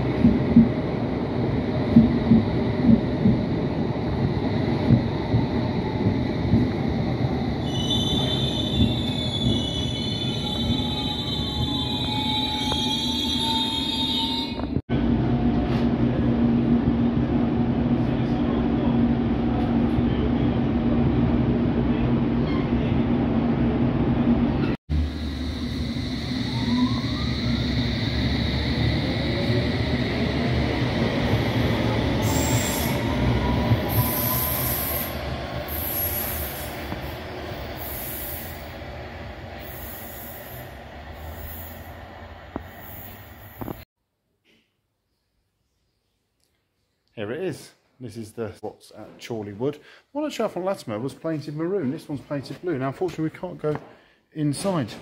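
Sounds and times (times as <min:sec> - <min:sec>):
train wheel and brake squeal: 0:07.6 - 0:14.8, 0:22.4 - 0:22.9, 0:25.4 - 0:29.5, 0:32.2 - 0:36.9.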